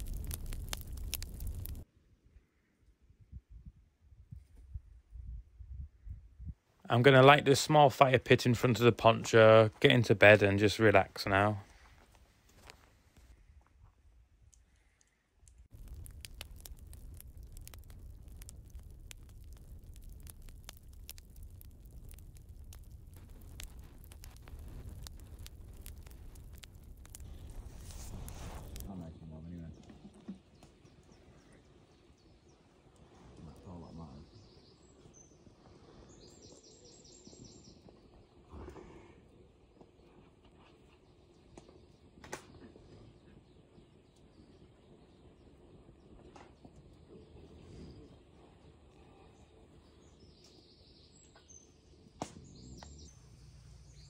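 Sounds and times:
dense crackling clicks: 0.0s - 1.8s, 14.5s - 28.9s
woodland ambience: 0.0s - 3.1s, 6.6s - 54.0s
low rumble: 15.7s - 28.9s.

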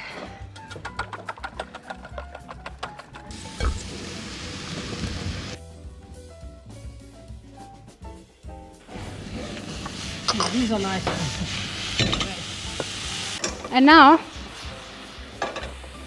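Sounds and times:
light background music: 0.0s - 16.0s
whisk clicking against metal bowl: 0.8s - 3.3s
mushrooms sizzling in frying pan: 3.3s - 5.6s, 9.0s - 16.0s.

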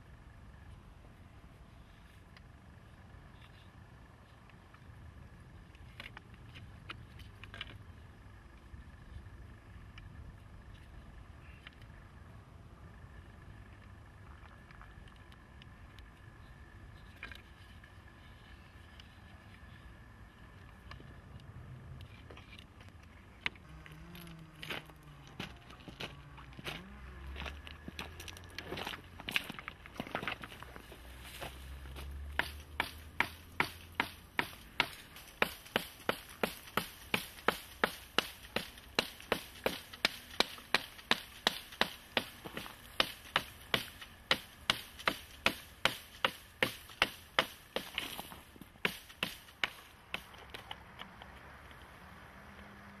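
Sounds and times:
stone tool chopping wood: 31.9s - 50.3s.

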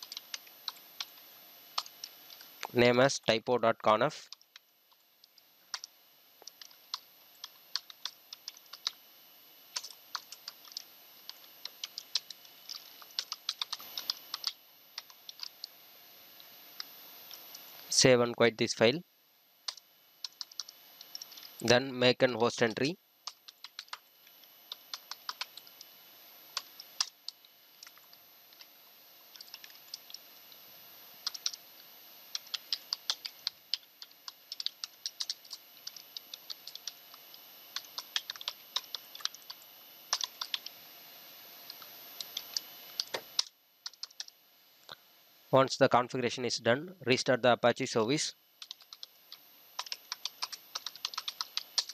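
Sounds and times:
typing on computer keyboard: 0.0s - 1.2s, 4.2s - 9.0s, 9.7s - 15.7s, 19.7s - 21.8s, 22.6s - 25.9s, 26.5s - 28.7s, 29.3s - 30.2s, 31.2s - 31.6s, 32.3s - 40.8s, 41.7s - 44.4s, 48.6s - 51.9s.

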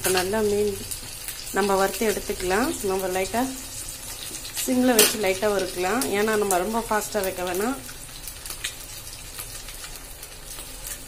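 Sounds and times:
fish sizzling in oil: 0.0s - 11.0s
oil popping and crackling: 0.0s - 11.0s.

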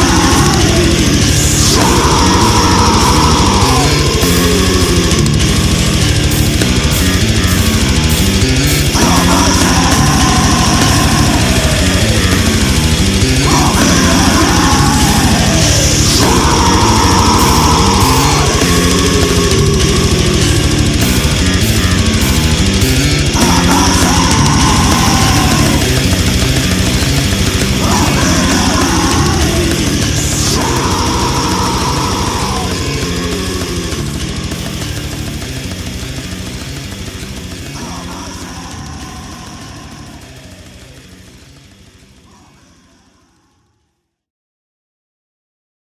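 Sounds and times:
fast drum strikes: 0.0s - 42.4s
death metal music: 0.0s - 43.8s
distorted guitars: 0.0s - 43.8s.

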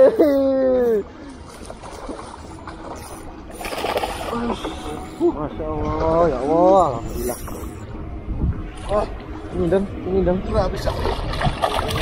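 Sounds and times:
water splashing and swirling: 1.0s - 5.2s, 10.6s - 12.0s.

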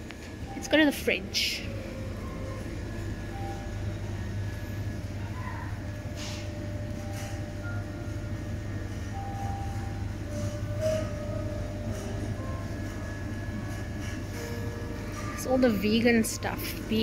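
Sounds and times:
freezer hum: 0.0s - 17.0s
supermarket background noise: 0.0s - 17.0s.

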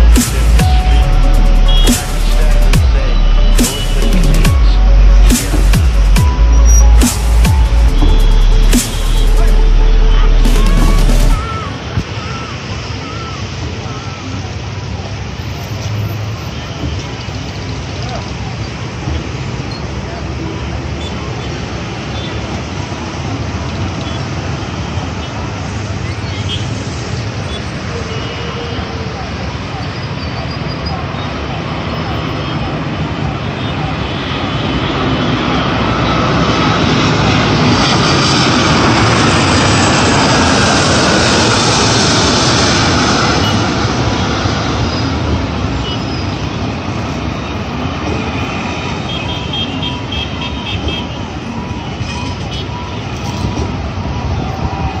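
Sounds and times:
voices: 0.0s - 44.2s
road traffic: 0.0s - 55.0s
jet airliner passing overhead: 21.2s - 55.0s.

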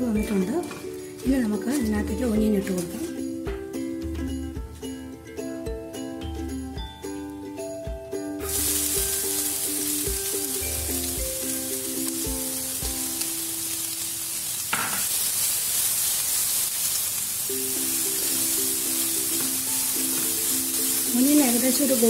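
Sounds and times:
onions sizzling in hot ghee: 0.0s - 6.2s, 7.0s - 22.0s.

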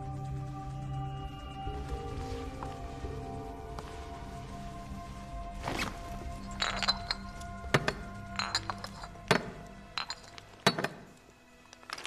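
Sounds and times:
low music drone: 0.0s - 12.0s
glass bottles clinking: 6.4s - 11.1s.

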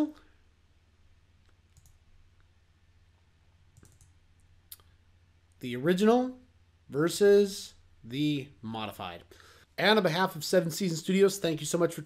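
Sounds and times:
low steady hum: 0.0s - 12.0s
computer mouse clicks: 1.4s - 2.5s, 3.8s - 4.9s.

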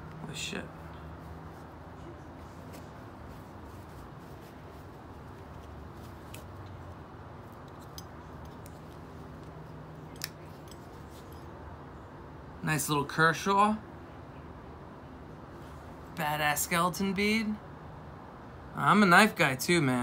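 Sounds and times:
low room hum: 0.0s - 19.3s.

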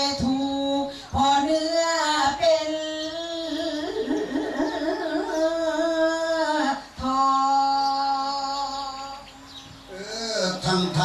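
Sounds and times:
person singing folk song: 0.0s - 11.0s.

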